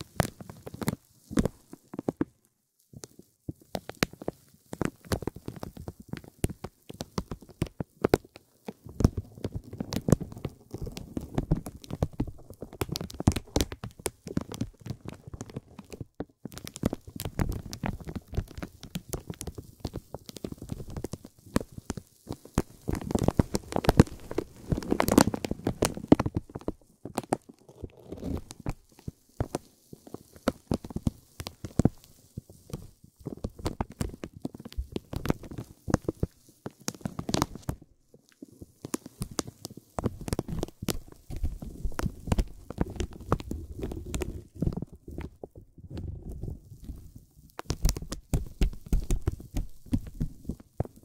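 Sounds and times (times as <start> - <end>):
vinyl film crinkling: 0.0 - 51.0.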